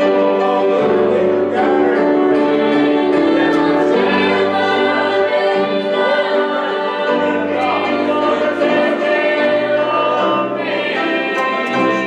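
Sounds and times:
gospel singing: 0.0 - 12.0
keyboard: 0.0 - 12.0.

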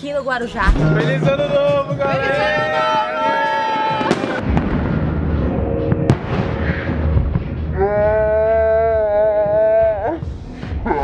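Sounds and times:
people shouting: 2.0 - 4.4
fireworks cracking: 3.8 - 7.8
rumble of firework bursts: 4.0 - 8.2.

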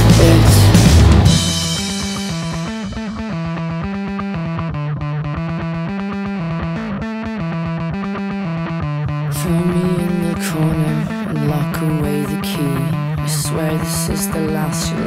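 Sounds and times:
full band playing: 0.0 - 2.9
electric guitar picking riff: 0.0 - 15.0.

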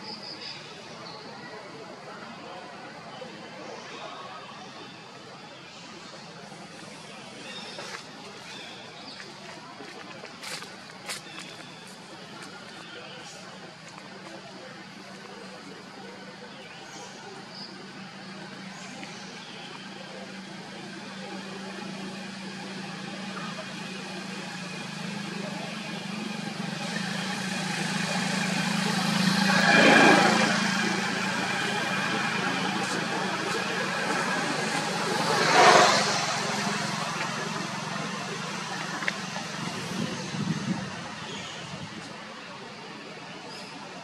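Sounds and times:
motor vehicles passing by: 0.0 - 44.0.

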